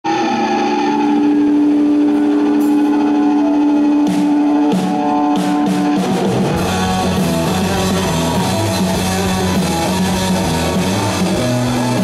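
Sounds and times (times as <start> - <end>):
electric guitars ringing chord: 0.1 - 12.0.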